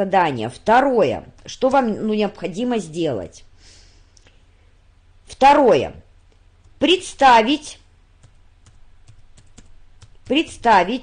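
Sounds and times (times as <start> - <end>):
low steady hum: 0.0 - 11.0
computer keyboard typing: 8.2 - 11.0.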